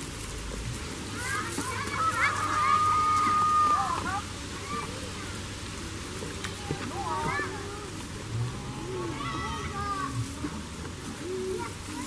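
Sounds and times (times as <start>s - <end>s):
goat chewing dry hay: 0.0s - 3.7s
faint voices: 0.0s - 12.0s
steady hiss: 0.0s - 12.0s.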